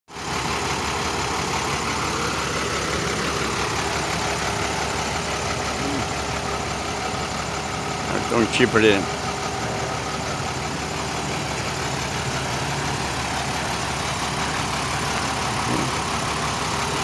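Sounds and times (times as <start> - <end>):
diesel engine idling: 0.1 - 17.0.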